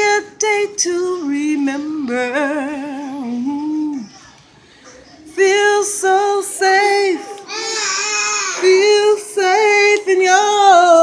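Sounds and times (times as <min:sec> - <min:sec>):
person singing wordless notes: 0:00.0 - 0:04.2, 0:05.2 - 0:11.0.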